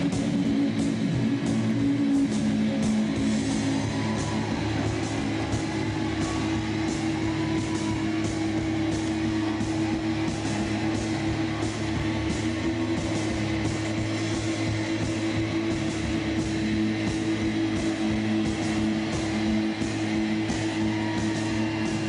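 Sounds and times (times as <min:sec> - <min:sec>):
loud rock music: 0:00.0 - 0:22.0.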